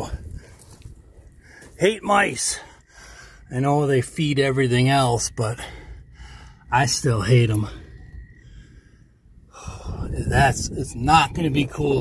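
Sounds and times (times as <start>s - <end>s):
faint low rumble: 0.0s - 12.0s
man breathing: 0.1s - 1.8s, 2.6s - 3.5s, 5.6s - 6.7s, 7.6s - 10.2s.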